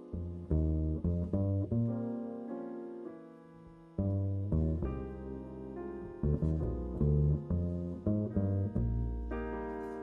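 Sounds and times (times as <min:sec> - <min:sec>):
double bass plucked notes: 0:00.0 - 0:02.8, 0:03.7 - 0:10.0.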